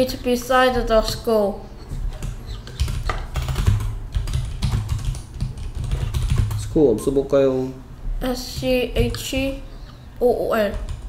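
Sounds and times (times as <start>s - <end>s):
typing on computer keyboard: 2.1s - 6.6s, 10.7s - 11.0s.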